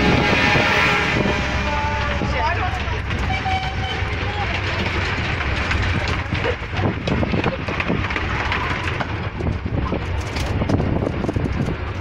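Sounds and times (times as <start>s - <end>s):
steady low rumble: 0.0s - 12.0s
miniature train coach rattling: 1.6s - 12.0s.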